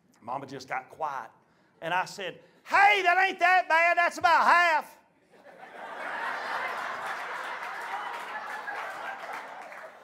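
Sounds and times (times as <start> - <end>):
audience laughing: 5.3 - 10.0.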